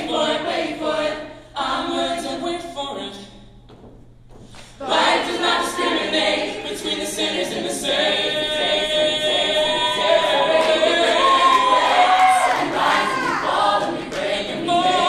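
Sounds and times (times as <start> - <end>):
a cappella group singing chords: 0.0 - 3.4, 4.7 - 15.0.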